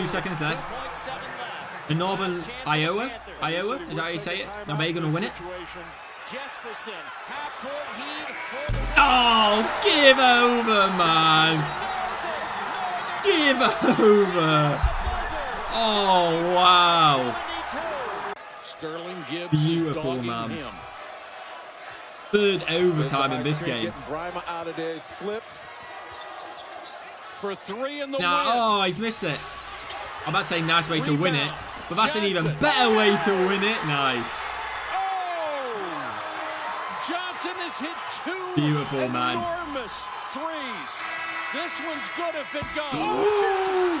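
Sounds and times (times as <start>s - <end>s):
crowd noise: 0.0s - 44.0s
buzzer: 41.0s - 42.2s.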